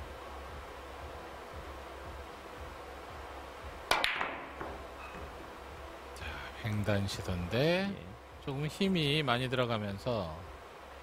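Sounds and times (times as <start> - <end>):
billiard balls clicking: 3.9 - 4.9
cue tip striking ball: 3.9 - 5.4.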